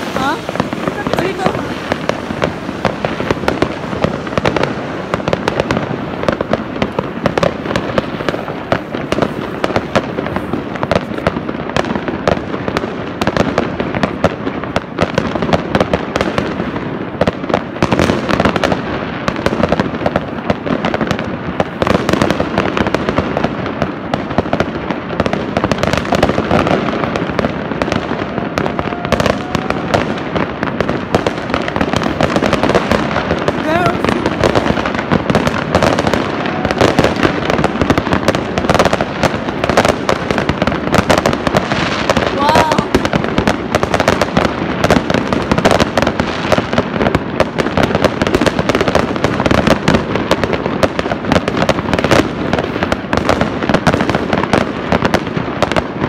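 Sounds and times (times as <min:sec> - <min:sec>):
fireworks crackling and banging: 0:00.0 - 0:56.0.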